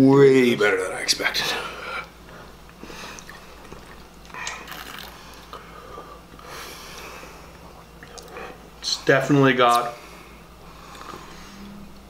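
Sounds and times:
person gulping and swallowing: 0:02.6 - 0:05.6, 0:07.5 - 0:08.8.

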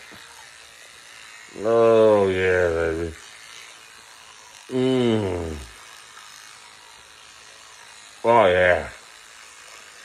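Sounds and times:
electric toothbrush buzzing: 0:00.0 - 0:10.0
man humming: 0:04.7 - 0:05.8.

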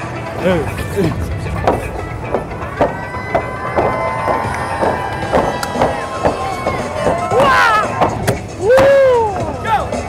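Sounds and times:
music with steady beat: 0:00.0 - 0:10.0.

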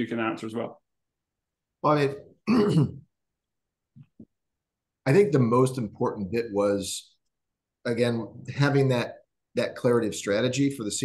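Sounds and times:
man speaking: 0:00.0 - 0:00.8, 0:07.8 - 0:11.0
man clearing throat: 0:02.4 - 0:03.1.

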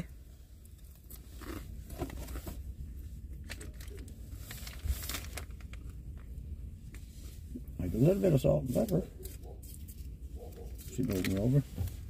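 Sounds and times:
low steady hum: 0:00.0 - 0:12.0
soft chewing: 0:00.6 - 0:02.4
plastic wrapper crinkles: 0:03.4 - 0:06.2.

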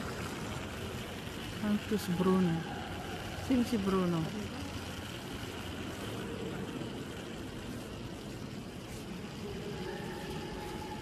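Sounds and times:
murmur of visitors in church: 0:00.0 - 0:11.0.

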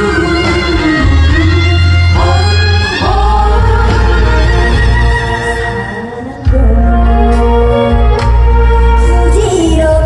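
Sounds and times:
band backing track: 0:00.0 - 0:10.0
woman singing ballad: 0:00.0 - 0:10.0.

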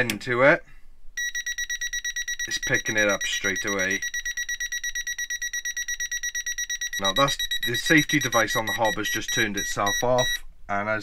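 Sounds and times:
gas detector alarm beeping: 0:01.2 - 0:10.4.

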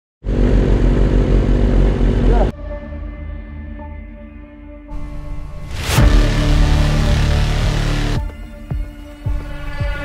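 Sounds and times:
motorcycle engine running: 0:00.2 - 0:02.5, 0:05.7 - 0:08.9.

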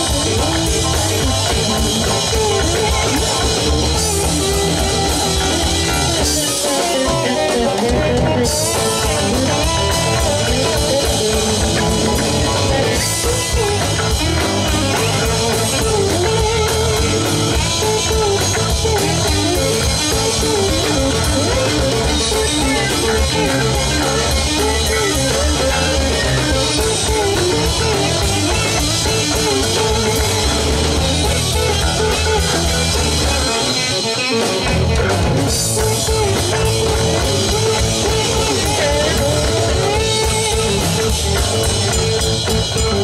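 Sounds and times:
amplified electric guitars: 0:00.0 - 0:43.0
drum kit: 0:00.0 - 0:43.0.

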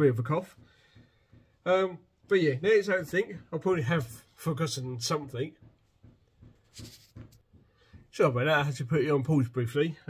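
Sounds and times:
man breathing faintly: 0:00.6 - 0:01.6, 0:06.7 - 0:08.1.

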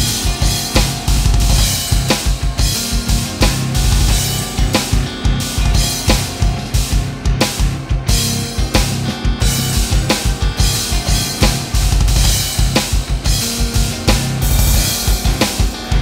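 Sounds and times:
electronic drum kit: 0:00.0 - 0:16.0
heavy metal band track: 0:00.0 - 0:16.0.

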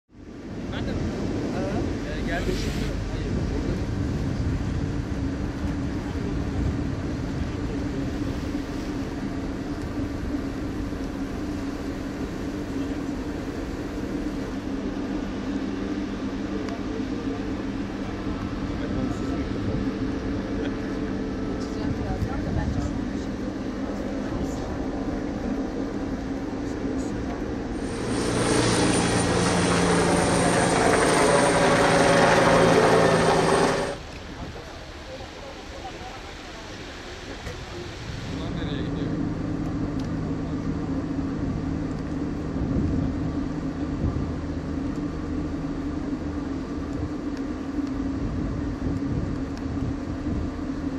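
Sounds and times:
helicopter rotor and turbine: 0:00.1 - 0:35.0
boat engine drone: 0:00.1 - 0:50.9
rushing water: 0:27.8 - 0:34.0.

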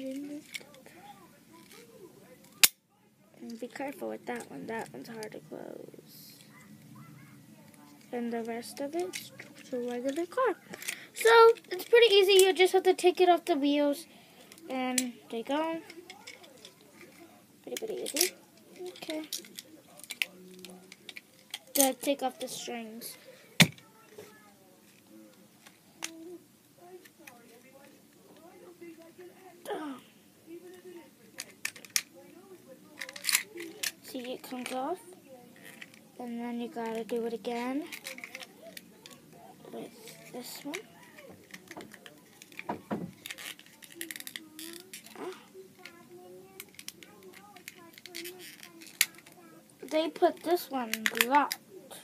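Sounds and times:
plastic toy clicking and rattling: 0:00.0 - 0:00.9, 0:01.5 - 0:02.8, 0:03.4 - 0:05.4, 0:06.4 - 0:13.8, 0:14.5 - 0:22.6, 0:23.6 - 0:29.1, 0:30.6 - 0:52.0.

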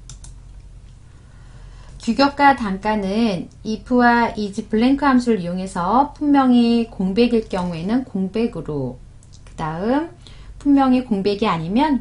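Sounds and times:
computer mouse clicks: 0:00.0 - 0:01.0
steady low hum: 0:00.0 - 0:12.0.

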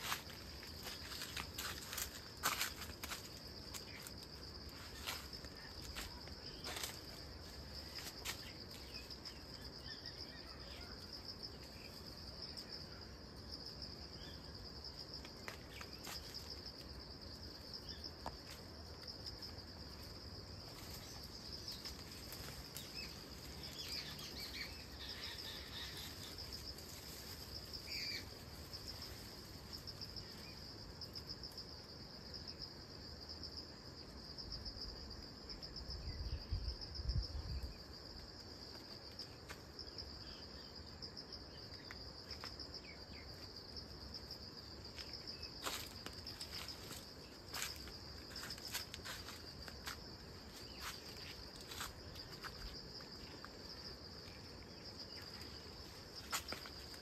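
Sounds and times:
insects chirping in a trill: 0:00.0 - 0:57.0.

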